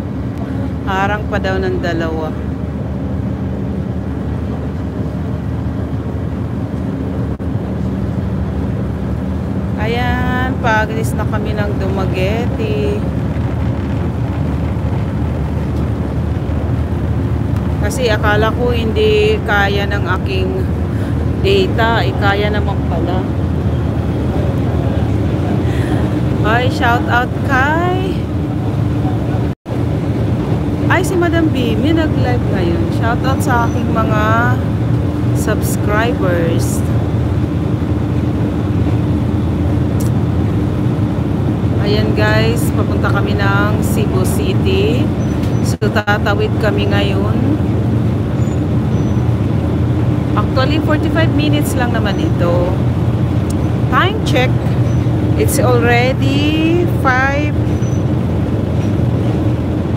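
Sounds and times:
ship engines rumbling: 0.0 - 59.9
wind on microphone: 0.0 - 59.9.

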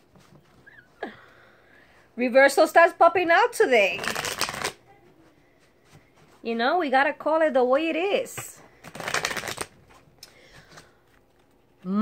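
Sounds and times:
cards being shuffled: 3.9 - 4.8, 8.8 - 11.8.

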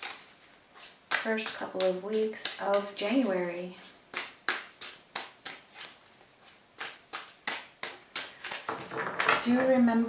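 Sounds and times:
cards being shuffled: 0.0 - 9.1.

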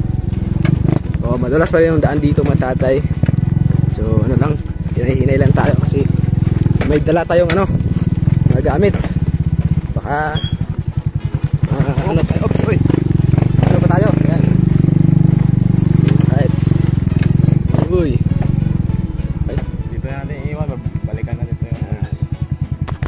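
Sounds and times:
small motorcycle engine running: 0.0 - 23.0
people talking: 1.2 - 3.0, 3.9 - 6.2, 6.8 - 7.8, 8.5 - 9.2, 10.0 - 10.6, 11.6 - 13.0, 13.6 - 14.8, 16.1 - 16.8, 17.6 - 18.5, 19.3 - 22.4.

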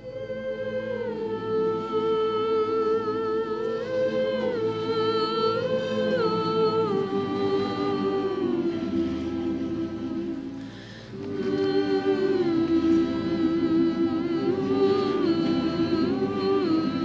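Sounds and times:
choir singing a cappella: 0.0 - 17.0.

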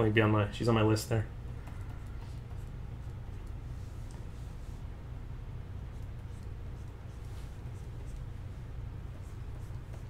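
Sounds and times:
steady low hum: 0.0 - 10.0
pen scratching on tablet: 5.9 - 8.4, 9.1 - 10.0.

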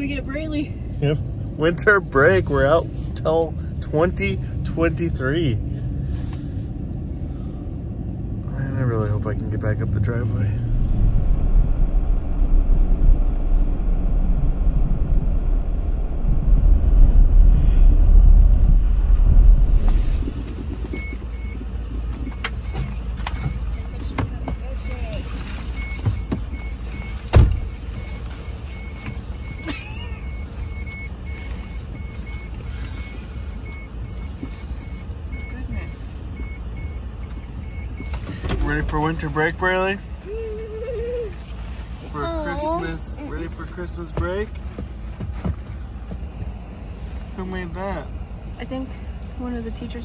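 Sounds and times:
vehicle rumble from inside cabin: 0.0 - 50.0
sharp thump: 27.3 - 27.6.

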